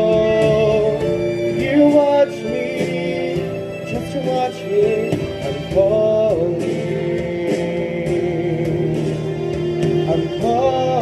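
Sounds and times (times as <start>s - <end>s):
instrumental accompaniment: 0.0s - 11.0s
man singing a ballad: 0.0s - 11.0s.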